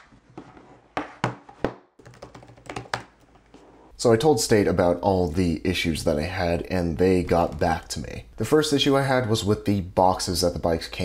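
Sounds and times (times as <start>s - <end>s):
laptop keys typing: 2.0s - 3.1s.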